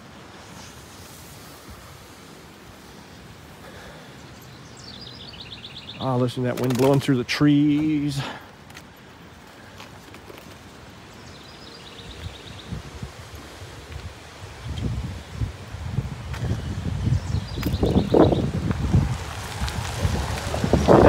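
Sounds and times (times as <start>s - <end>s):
wind rustling leaves: 0.0s - 21.0s
wind buffeting microphone: 12.0s - 21.0s.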